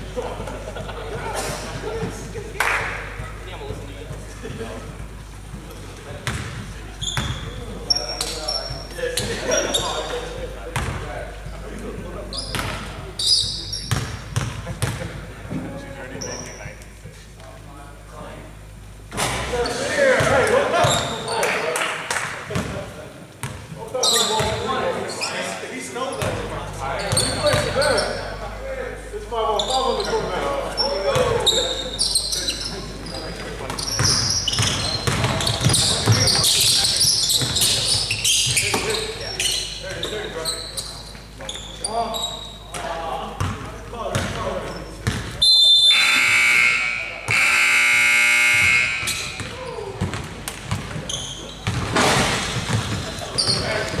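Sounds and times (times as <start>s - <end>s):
basketball bouncing: 4.5s - 7.6s, 10.7s - 11.1s, 13.9s - 15.2s, 33.7s - 36.6s, 43.4s - 44.4s, 45.0s - 45.4s, 48.5s - 53.2s
scoreboard buzzer: 45.5s - 49.5s.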